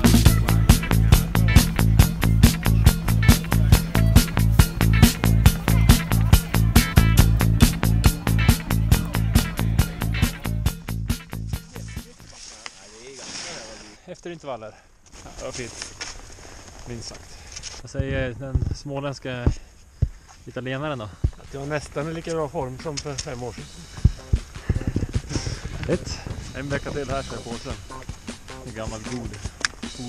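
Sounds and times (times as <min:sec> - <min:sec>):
faint talking: 0:00.0 - 0:10.7
wind hiss: 0:15.8 - 0:30.0
heavy dull thumps: 0:19.4 - 0:20.3, 0:22.7 - 0:29.9.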